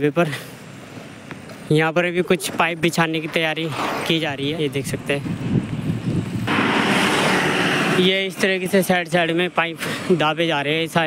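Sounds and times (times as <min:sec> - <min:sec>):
highway traffic rush: 0:00.0 - 0:11.0.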